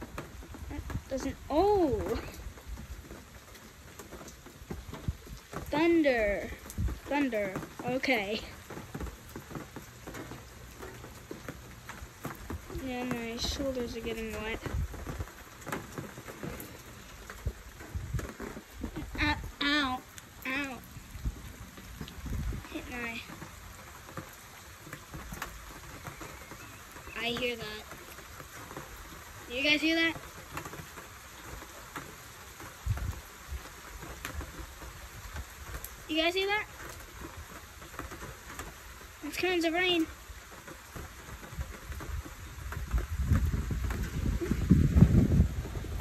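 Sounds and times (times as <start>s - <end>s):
raindrops tapping on surfaces: 0.0s - 46.0s
steady rain falling: 0.0s - 46.0s
wind thumps on microphone: 6.5s - 7.7s, 12.3s - 19.8s, 20.8s - 23.2s, 32.8s - 35.8s, 41.0s - 46.0s.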